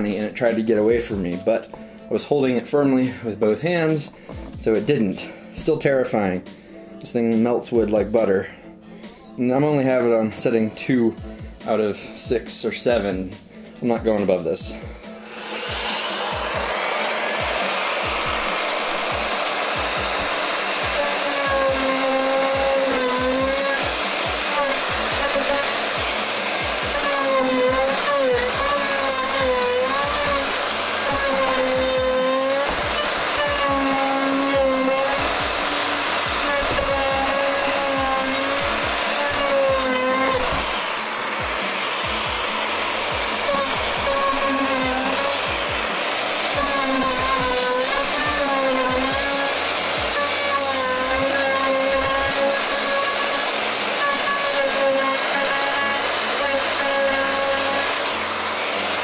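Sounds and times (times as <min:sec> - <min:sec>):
router motor whine: 0:15.0 - 0:59.0.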